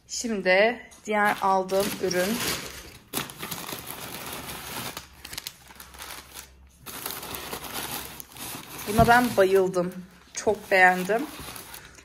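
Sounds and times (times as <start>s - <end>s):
packaging crinkling and rustling: 1.2s - 12.0s.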